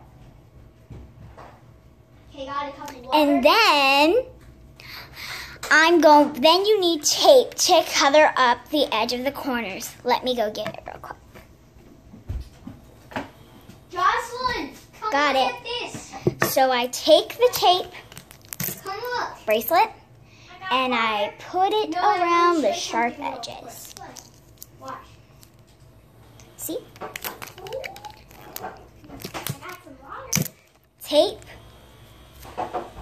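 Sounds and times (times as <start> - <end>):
crinkly clicks and rustles: 17.6 - 19.0, 23.7 - 25.9, 27.0 - 31.0.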